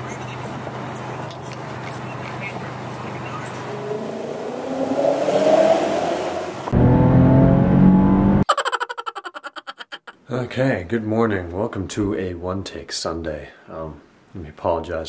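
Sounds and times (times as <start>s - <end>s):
road noise inside car: 0.0s - 8.4s
car engine accelerating: 2.8s - 8.4s
loud engine revving: 3.4s - 8.4s.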